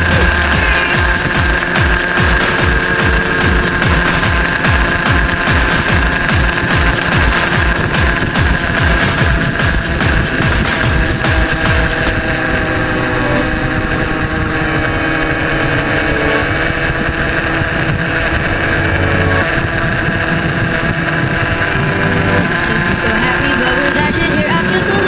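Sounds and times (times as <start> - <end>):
motorcycle engine running: 0.0 - 25.0
wind noise on microphone: 0.0 - 25.0.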